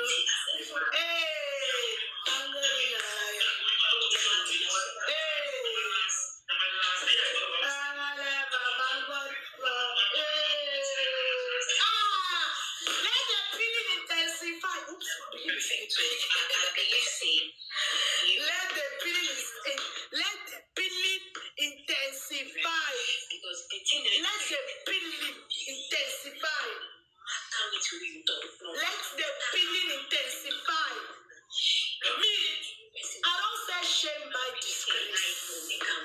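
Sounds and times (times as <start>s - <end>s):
woman talking: 0.0s - 6.1s, 7.4s - 31.2s, 32.0s - 36.0s.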